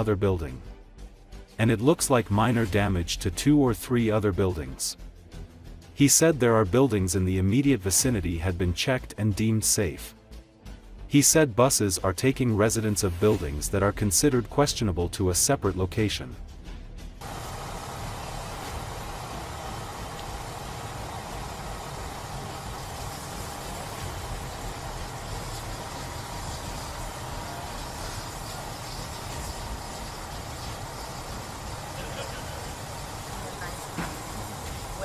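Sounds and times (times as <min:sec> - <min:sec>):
engines rumbling: 0:17.2 - 0:35.0
hiss: 0:17.2 - 0:35.0.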